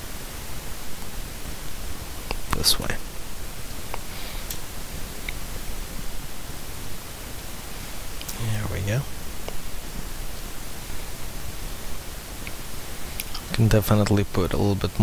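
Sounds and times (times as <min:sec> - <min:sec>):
background hiss: 0:00.0 - 0:15.0.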